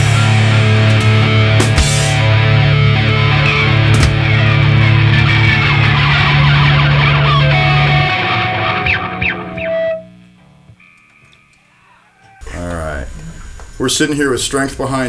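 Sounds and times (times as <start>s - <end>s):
metal band playing: 0.0s - 11.3s
guitar note ringing: 0.0s - 11.8s
faint hum: 6.8s - 15.0s.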